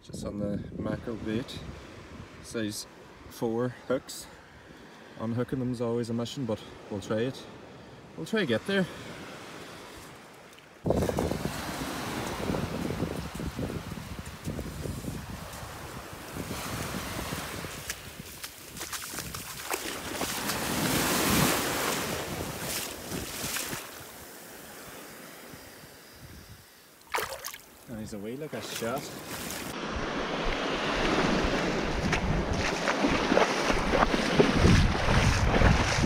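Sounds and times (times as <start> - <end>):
surf washing over sand: 0.9 - 36.0
wind buffeting microphone: 10.8 - 24.2, 29.8 - 36.0.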